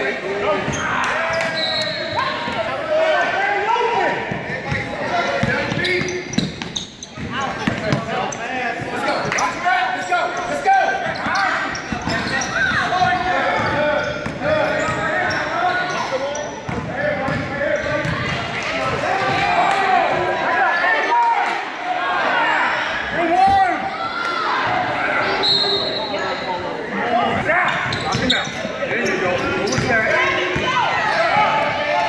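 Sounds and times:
basketball bouncing on court: 0:04.3 - 0:08.1, 0:16.7 - 0:18.4.

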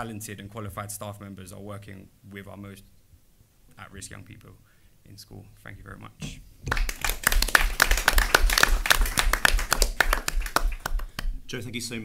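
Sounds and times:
audience applauding: 0:06.7 - 0:11.4.

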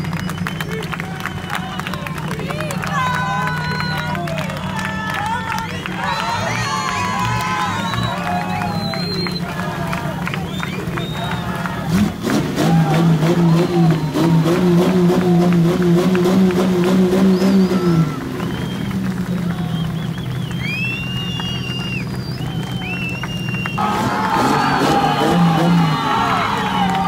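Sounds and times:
buggy engine running: 0:00.0 - 0:27.0
crowd cheering and whistling: 0:00.0 - 0:27.0.

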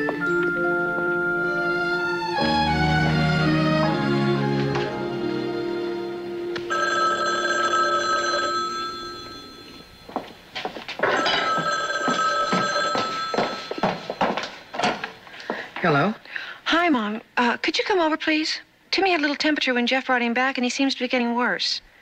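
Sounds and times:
telephone bell ringing: 0:06.7 - 0:10.4, 0:11.0 - 0:14.4.

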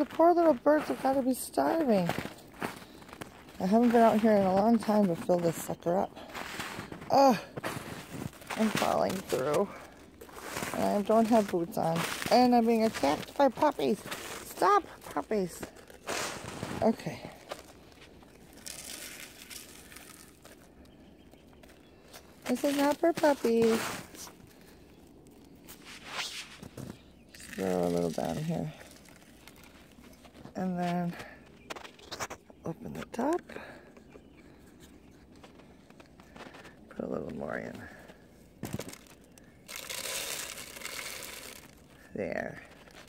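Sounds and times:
footsteps in icy snow: 0:00.0 - 0:43.0
small crackles: 0:00.0 - 0:43.0
bird seed pouring: 0:18.4 - 0:20.7, 0:26.8 - 0:30.0, 0:38.8 - 0:41.9.

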